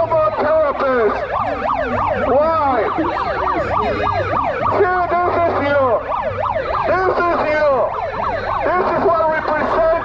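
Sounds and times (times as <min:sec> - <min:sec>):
electronic siren yelping: 0:00.0 - 0:10.0
siren wail: 0:00.0 - 0:10.0.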